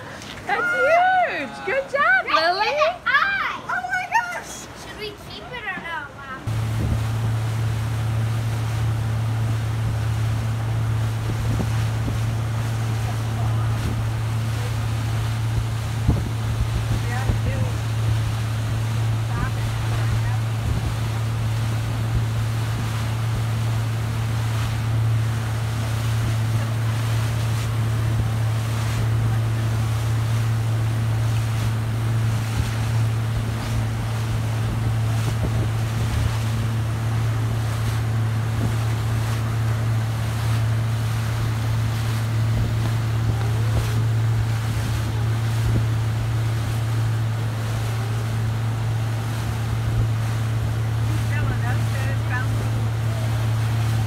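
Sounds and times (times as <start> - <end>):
motorboat engine humming: 0.0 - 54.0
rush of boat wake: 0.0 - 54.0
wind on microphone: 6.5 - 54.0.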